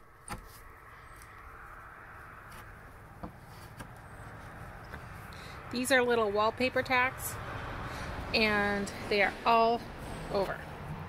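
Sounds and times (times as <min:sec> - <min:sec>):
faint steady background noise: 0:00.0 - 0:11.0.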